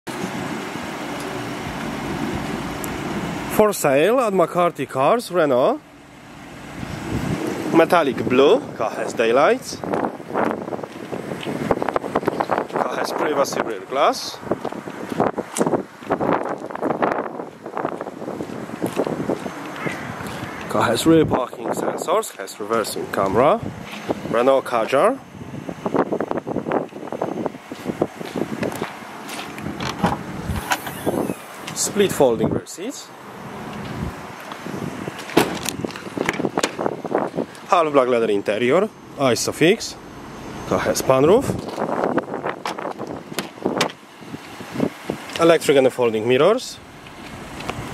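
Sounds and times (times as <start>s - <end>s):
wind buffeting microphone: 5.9s - 37.7s, 38.5s - 45.8s, 46.4s - 47.9s
car tailgate unlatching and opening: 28.6s - 31.8s, 35.2s - 37.2s, 41.6s - 44.0s.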